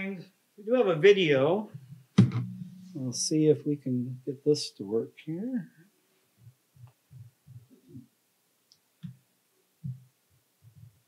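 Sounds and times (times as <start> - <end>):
microphone handling thumps: 1.7 - 3.0, 6.4 - 8.1.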